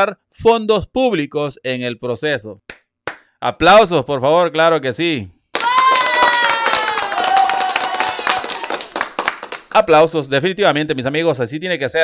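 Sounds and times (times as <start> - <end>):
hands clapping: 2.7 - 3.3, 5.6 - 9.9
high-pitched cheer: 5.5 - 9.6.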